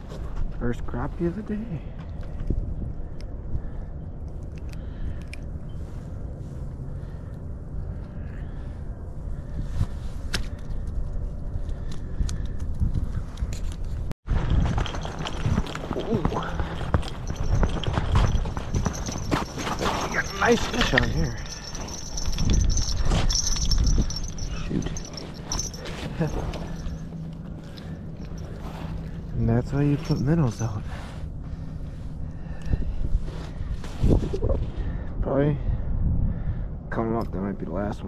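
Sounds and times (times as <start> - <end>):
wind buffeting microphone: 7.5 - 38.0
footsteps on snowy ice: 14.3 - 31.1.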